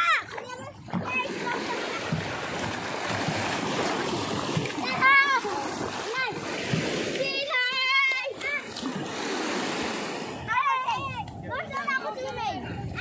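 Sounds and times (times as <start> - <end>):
children shouting and squealing: 0.0 - 2.7, 4.6 - 8.9, 10.4 - 13.0
children splashing in water: 0.0 - 13.0.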